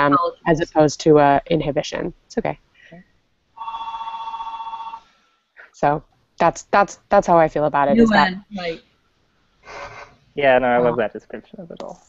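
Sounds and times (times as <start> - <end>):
electronic telephone ring: 3.6 - 5.1.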